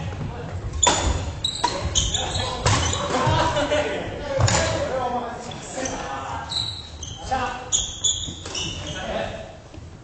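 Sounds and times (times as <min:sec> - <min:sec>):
shoes squeaking on wooden floor: 0:00.1 - 0:03.5, 0:05.4 - 0:09.3.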